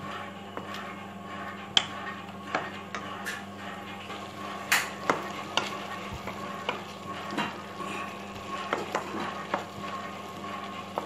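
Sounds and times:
spatula scraping and knocking in pan: 0.5s - 11.0s
light sizzle: 3.9s - 11.0s.

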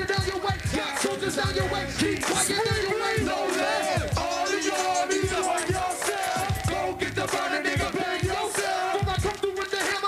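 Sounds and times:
hip hop beat: 0.0s - 10.0s
crowd shouting along: 2.2s - 10.0s.

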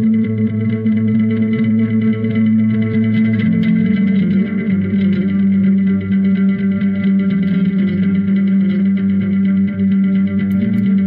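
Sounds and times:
electric guitar chords ringing: 0.0s - 11.0s
low bass line: 0.0s - 11.0s.

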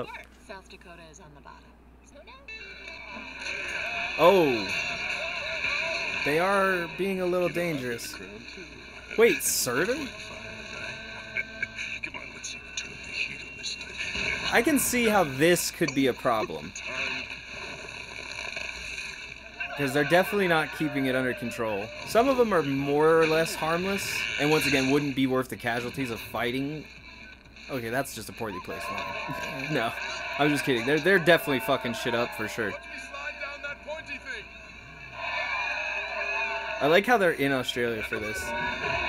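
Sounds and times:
faint voices from television: 0.0s - 18.4s, 26.3s - 39.0s.

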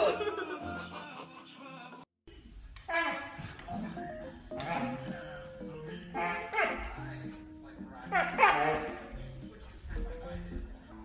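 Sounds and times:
light acoustic music: 0.0s - 11.0s
dog yelping bark: 6.2s - 6.8s, 8.1s - 8.9s.

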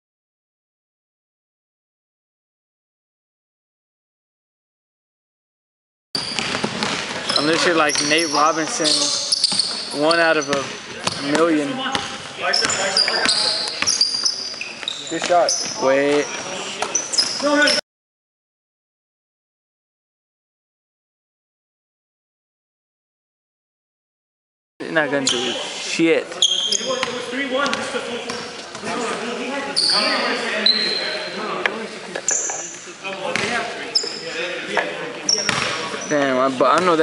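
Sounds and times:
basketball bouncing on hardwood: 6.2s - 7.4s, 35.5s - 35.7s
players' voices echoing: 6.2s - 17.8s, 24.8s - 37.0s
sneaker squeaks: 6.2s - 17.8s, 25.2s - 31.4s, 32.1s - 34.4s, 35.2s - 36.9s.

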